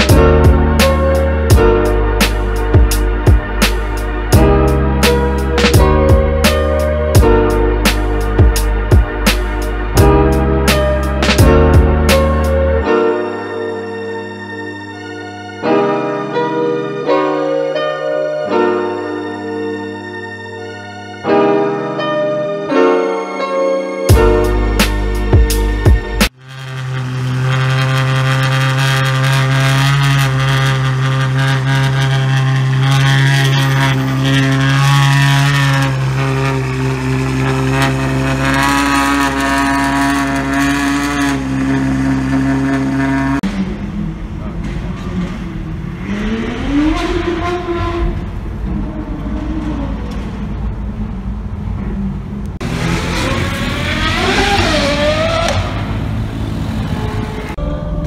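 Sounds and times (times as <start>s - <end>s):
car engine idling and pulling away: 24.2s - 58.0s.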